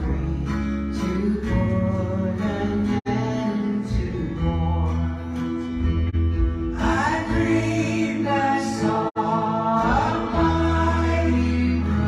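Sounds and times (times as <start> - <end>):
acoustic folk band playing: 0.0 - 12.0.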